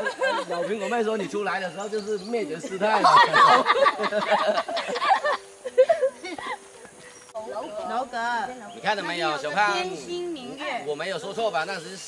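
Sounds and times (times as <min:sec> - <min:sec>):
people talking indistinctly: 0:07.4 - 0:12.0.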